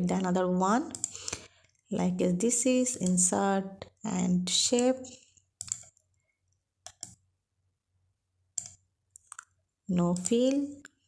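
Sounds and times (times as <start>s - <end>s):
computer mouse clicking: 0.9s - 1.5s, 2.8s - 3.2s, 4.6s - 5.0s, 5.6s - 6.0s, 6.8s - 7.2s, 8.6s - 9.5s, 10.1s - 11.0s.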